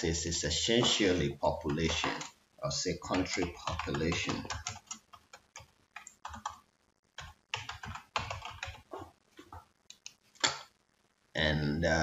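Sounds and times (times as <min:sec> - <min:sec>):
computer keyboard typing: 0:00.8 - 0:02.3, 0:03.0 - 0:06.6, 0:07.2 - 0:10.2.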